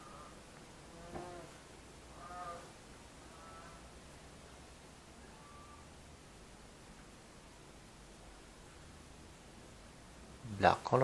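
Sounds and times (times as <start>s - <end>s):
short pitched animal calls: 2.1s - 2.7s, 3.3s - 3.9s, 5.2s - 5.9s.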